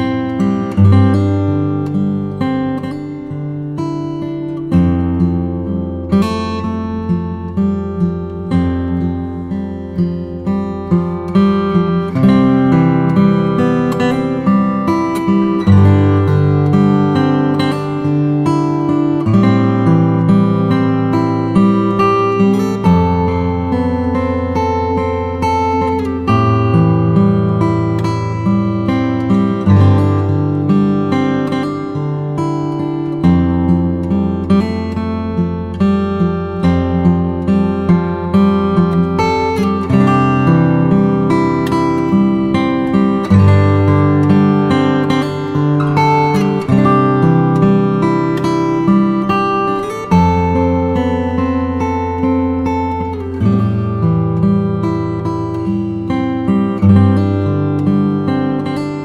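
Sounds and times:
acoustic guitar playing chords: 0:00.0 - 0:59.0.

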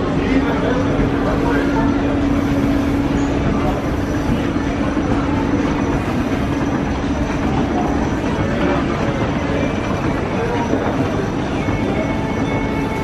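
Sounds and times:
escalator hum and rumble: 0:00.0 - 0:13.0
faint crowd chatter: 0:00.0 - 0:13.0.

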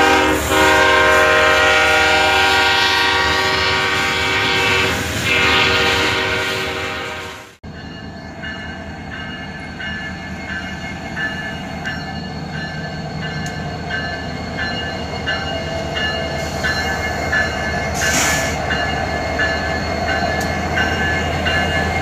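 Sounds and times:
diesel locomotive engine rumbling: 0:00.0 - 0:22.0
locomotive bell ringing: 0:07.6 - 0:22.0.

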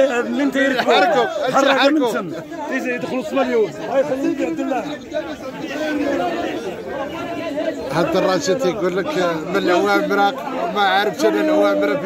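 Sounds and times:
market chatter: 0:00.0 - 0:12.0.

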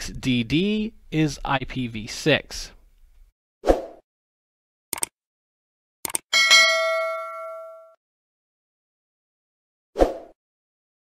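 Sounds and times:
bell ding: 0:06.4 - 0:08.0.

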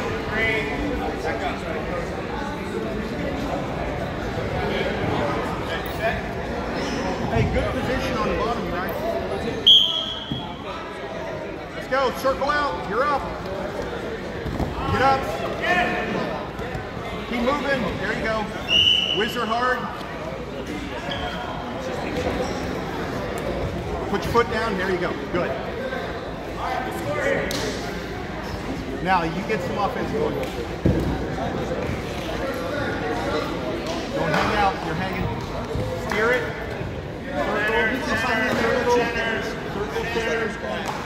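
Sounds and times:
chatter of many voices: 0:00.0 - 0:41.0
referee's whistle blast: 0:09.6 - 0:10.5.

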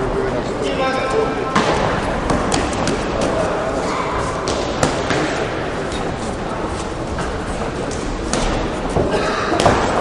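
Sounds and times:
sports hall noise: 0:00.0 - 0:10.0.

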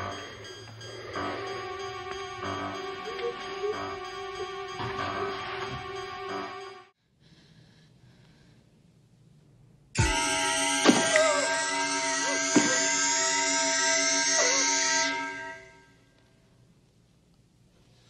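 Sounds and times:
horror film music: 0:00.0 - 0:06.9, 0:10.0 - 0:16.1
loud music stinger: 0:10.0 - 0:15.6
sharp musical hits: 0:10.0 - 0:15.6.

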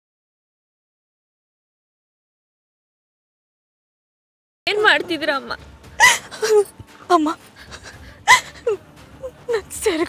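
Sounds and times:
person sobbing and crying out: 0:06.0 - 0:06.7, 0:07.6 - 0:10.0.

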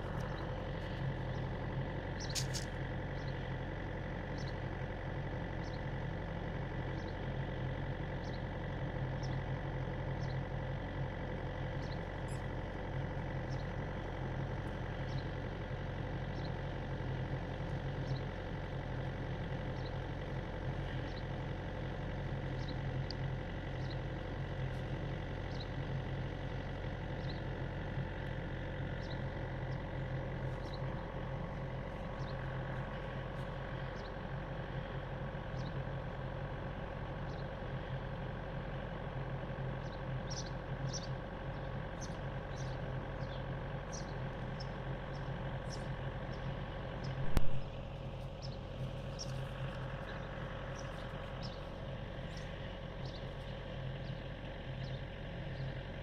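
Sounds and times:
engine idling hum: 0:00.0 - 0:56.0.

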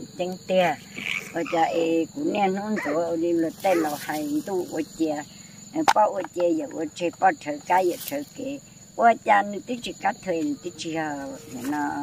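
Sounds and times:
high insect drone: 0:00.0 - 0:12.0
woman speaking: 0:00.0 - 0:12.0.

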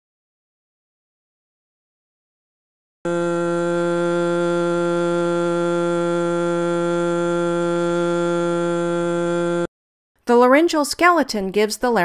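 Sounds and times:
person singing sustained vowel: 0:03.1 - 0:09.7.

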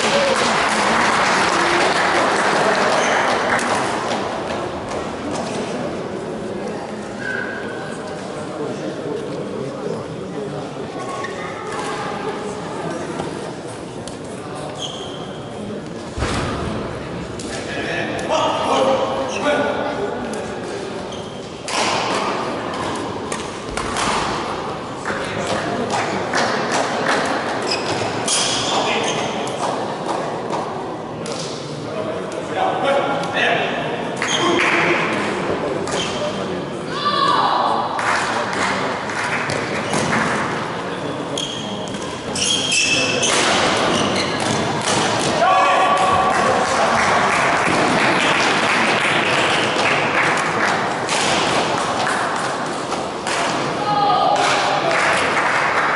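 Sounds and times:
players' voices: 0:00.0 - 0:55.9.

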